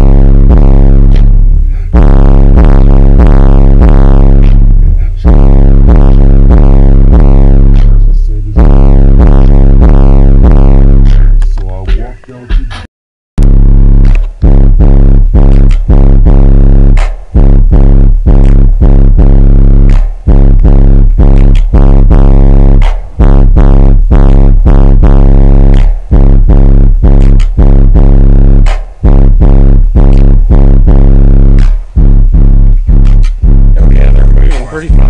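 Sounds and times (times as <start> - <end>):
distorted bass music from subwoofers: 0.0 - 35.0.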